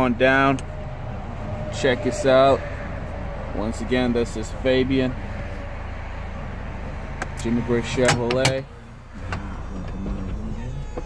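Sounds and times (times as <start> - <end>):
convertible top motor hum: 6.3 - 11.0.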